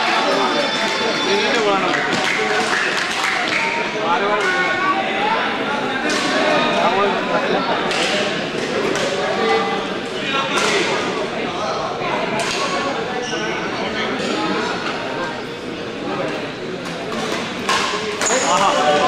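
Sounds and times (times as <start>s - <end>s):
crowd chatter: 0.0s - 19.0s
rackets hitting shuttlecock: 16.8s - 18.8s.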